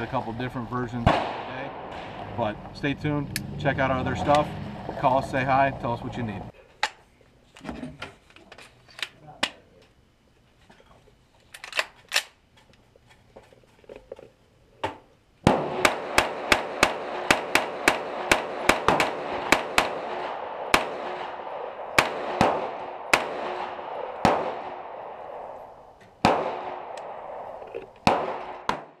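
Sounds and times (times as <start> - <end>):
pistol shots with echo: 1.0 - 2.4, 15.4 - 29.0.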